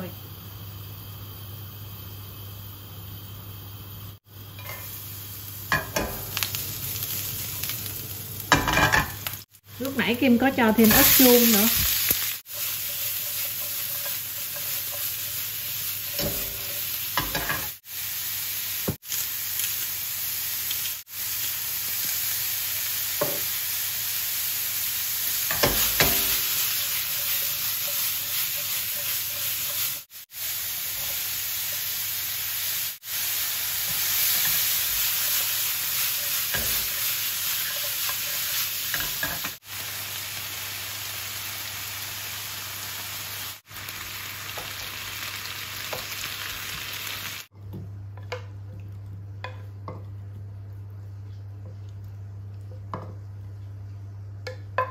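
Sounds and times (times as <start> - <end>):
vegetables sizzling in frying pan: 0.0 - 47.5.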